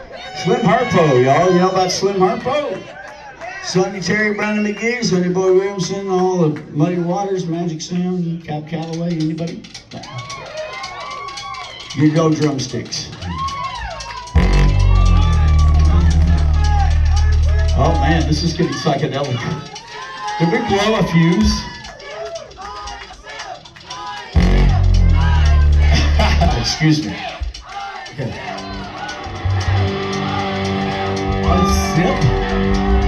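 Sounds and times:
rock band swooping wavering tones: 13.2 - 19.1, 24.2 - 26.8, 28.3 - 33.0
loud sustained low drone: 14.4 - 18.4, 24.4 - 26.6, 28.6 - 33.0.

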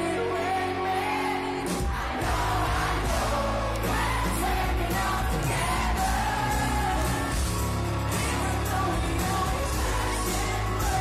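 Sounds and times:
person singing: 0.0 - 11.0
rock band playing live: 0.0 - 11.0
drums and bass: 1.6 - 11.0.

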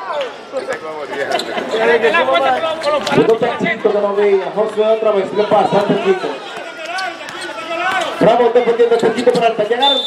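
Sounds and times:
voices: 0.0 - 10.0
basketball bouncing on court: 5.7 - 8.3.

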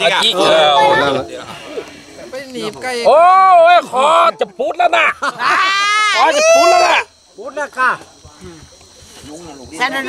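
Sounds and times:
crickets chirring: 0.0 - 10.0.

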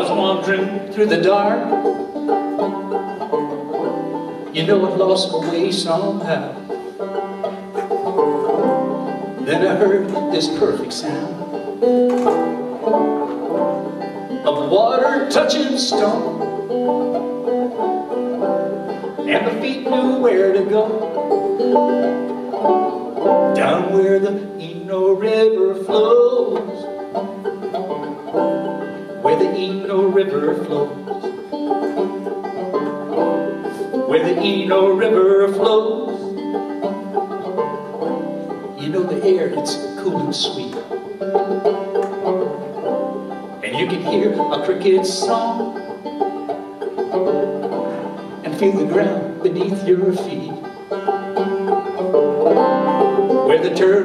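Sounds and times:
banjo picking: 0.0 - 54.0
person singing: 9.4 - 11.6, 14.4 - 16.6, 19.2 - 21.2, 23.5 - 27.0, 29.0 - 31.2, 33.6 - 36.4, 38.8 - 40.9, 43.6 - 45.9, 48.2 - 50.8, 53.3 - 54.0.

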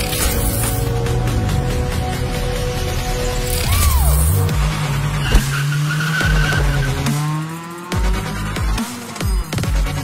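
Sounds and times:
tyre squeal: 5.2 - 7.0.

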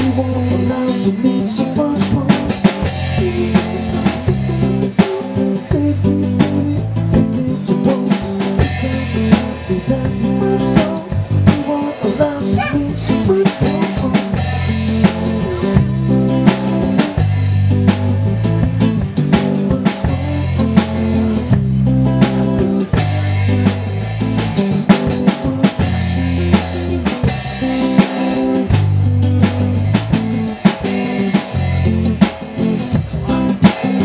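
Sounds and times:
bass line: 0.0 - 34.0
drum beat: 0.0 - 34.0
electric guitar playing: 0.0 - 34.0.

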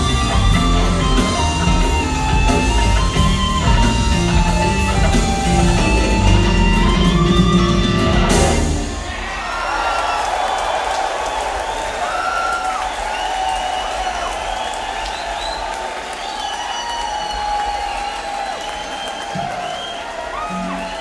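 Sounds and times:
crowd applauding and cheering: 0.0 - 21.0
crowd whistling: 0.0 - 21.0.

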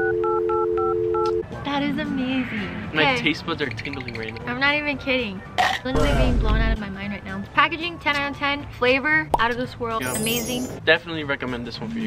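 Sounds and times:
telephone dial tone: 0.0 - 1.4.

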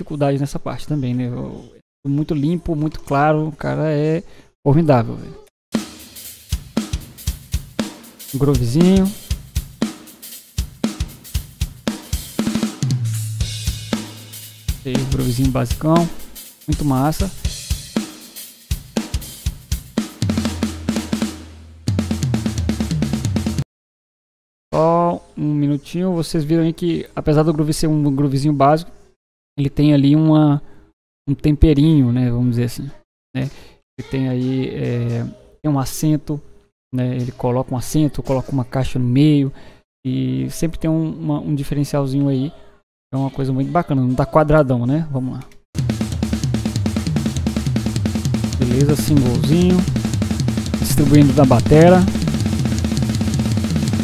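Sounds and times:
drum kit solo: 5.8 - 23.6, 45.8 - 54.0.

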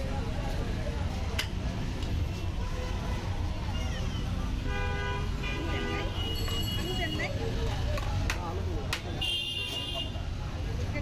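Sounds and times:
low traffic rumble: 0.0 - 11.0
vehicle horns tooting: 4.6 - 7.3, 9.2 - 10.2.

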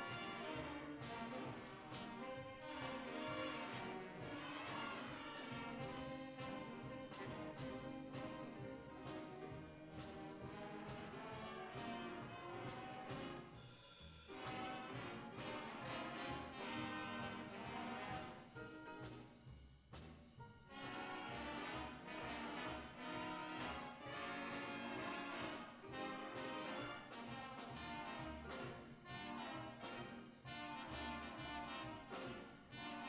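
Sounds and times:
jazz big band playing: 0.0 - 33.0.

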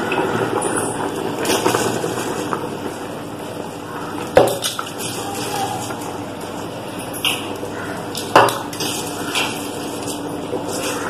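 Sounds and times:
gravy bubbling: 0.0 - 6.9.

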